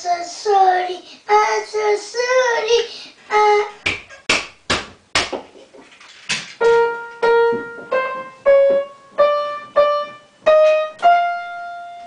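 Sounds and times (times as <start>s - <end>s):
child vocalizing wordlessly: 0.0s - 3.8s
sharp smacks: 3.8s - 5.4s
upright piano notes: 6.6s - 12.0s.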